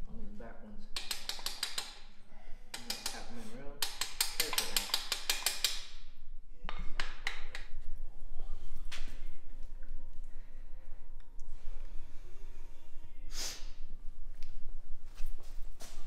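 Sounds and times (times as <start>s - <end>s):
hand ratchet clicking: 1.0s - 2.0s, 2.7s - 5.9s.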